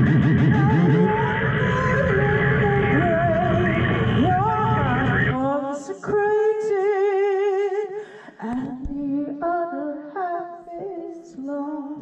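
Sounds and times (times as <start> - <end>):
electronic noise music: 0.0 - 5.4
wavering sung-like tone: 0.0 - 5.4.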